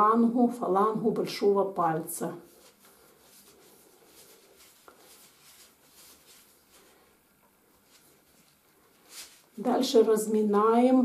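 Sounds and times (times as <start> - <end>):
hands rubbing a foot: 2.4 - 9.6.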